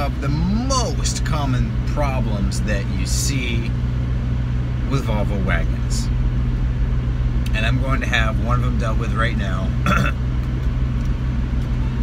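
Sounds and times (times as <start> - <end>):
car engine and exhaust drone: 0.0 - 12.0.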